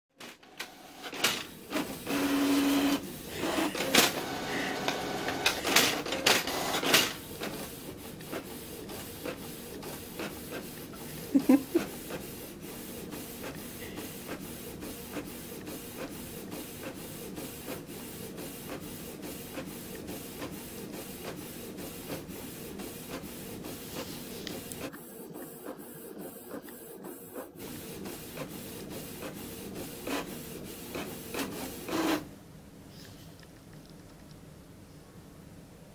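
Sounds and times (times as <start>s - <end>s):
inkjet printer printing: 0.2s - 32.3s.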